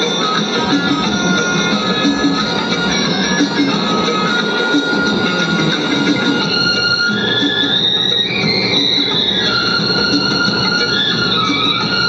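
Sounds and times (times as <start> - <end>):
instrumental backing track: 0.0 - 12.0.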